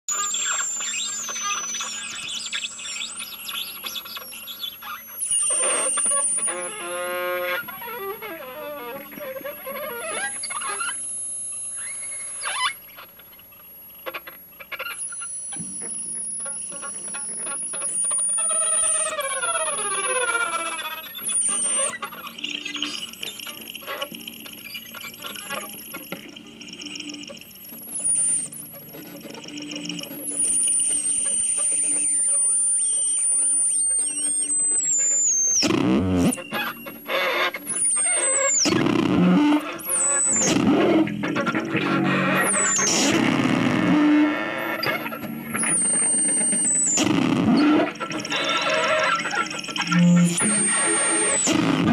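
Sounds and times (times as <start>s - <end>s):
thin high whine: 0.1s - 51.9s.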